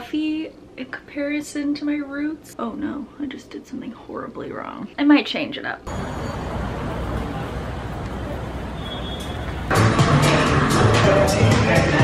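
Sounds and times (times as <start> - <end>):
city street traffic: 5.9 - 10.2
music: 9.6 - 12.0.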